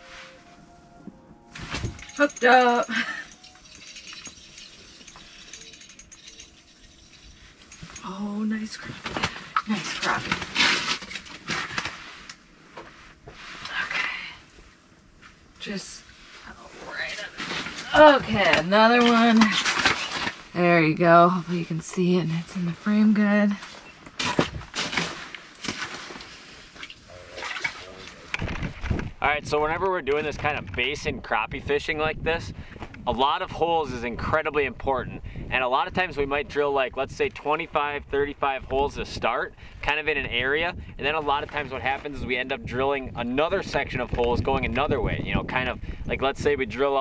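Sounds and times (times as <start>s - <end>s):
fishing reel clicking: 2.0s - 7.8s
water sloshing: 24.6s - 28.3s
water splashing: 26.8s - 28.2s.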